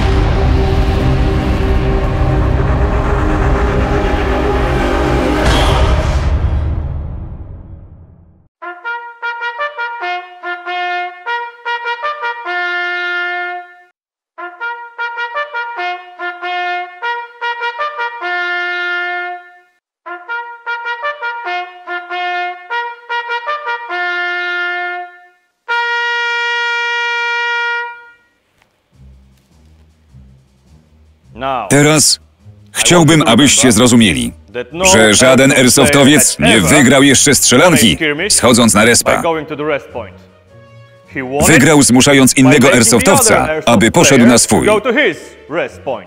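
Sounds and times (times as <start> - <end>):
low rumble: 0.0 - 8.5
trumpet bugle call: 8.6 - 28.5.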